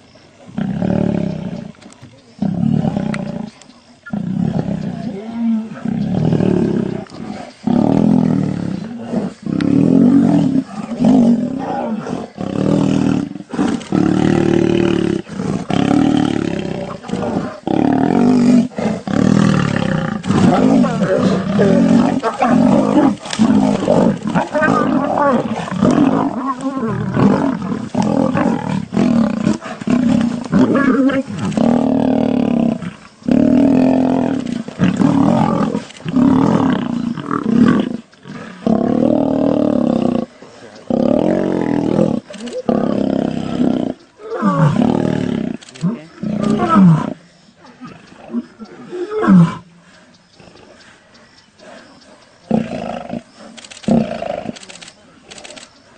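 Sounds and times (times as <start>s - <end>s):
lions roaring and snarling: 0.4s - 55.9s.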